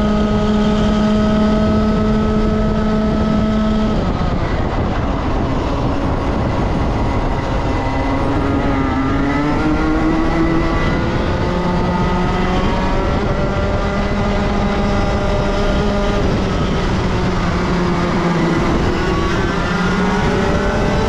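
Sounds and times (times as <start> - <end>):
kart engine revving: 0.0 - 21.0
wind rush on microphone: 0.0 - 21.0.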